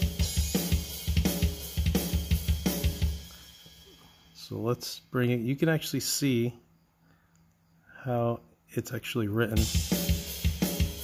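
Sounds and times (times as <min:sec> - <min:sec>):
drum kit metal groove: 0:00.0 - 0:04.6, 0:09.6 - 0:11.0.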